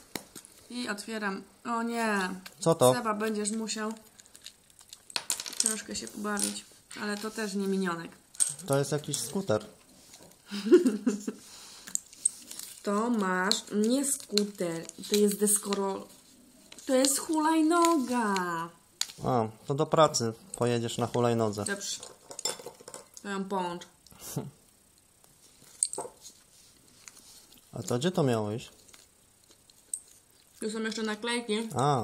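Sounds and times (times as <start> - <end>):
hands handling plastic pieces: 2.5 - 7.5, 11.8 - 16.0
hands handling plastic and paper: 12.1 - 16.1.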